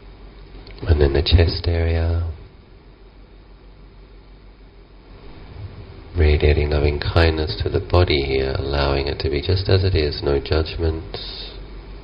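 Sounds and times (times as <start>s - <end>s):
faint low hum: 0.0s - 12.0s
room noise hiss: 0.0s - 12.0s.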